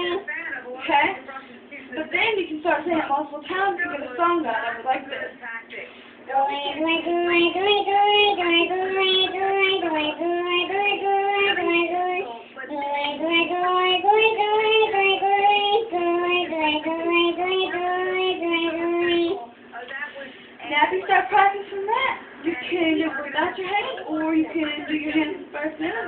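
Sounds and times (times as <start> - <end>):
person singing in chipmunk voice: 6.3 - 19.5.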